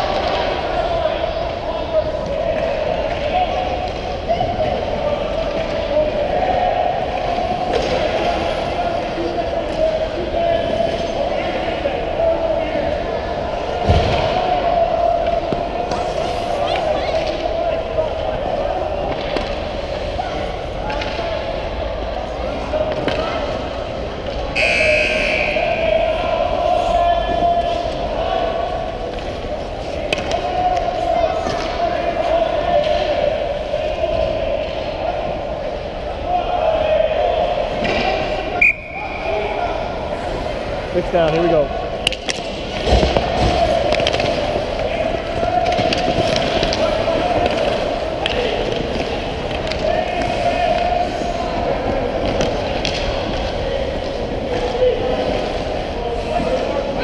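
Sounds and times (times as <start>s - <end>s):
distant voices: 0.0s - 57.0s
steady rink hum: 0.0s - 57.0s.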